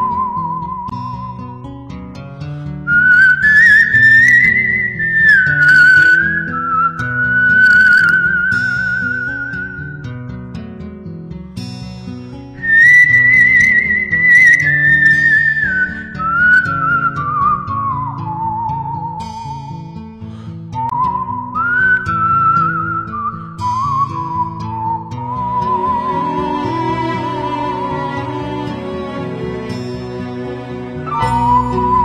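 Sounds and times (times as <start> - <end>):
whistled melody with vibrato: 0.0 - 1.7, 2.7 - 10.5, 12.6 - 32.0
soft instrumental chords: 25.7 - 32.0.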